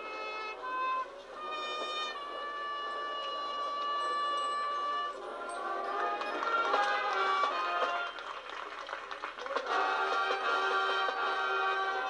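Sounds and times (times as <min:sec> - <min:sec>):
marching band playing: 0:00.0 - 0:08.8, 0:09.5 - 0:12.0.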